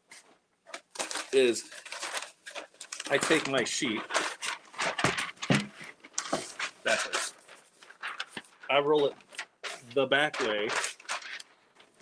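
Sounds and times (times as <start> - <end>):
paper rustling and crackling: 0.1 - 12.0.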